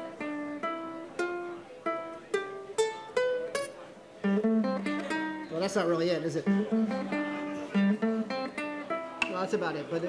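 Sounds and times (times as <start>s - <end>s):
ukulele notes plucked: 0.0s - 5.7s, 6.4s - 9.6s.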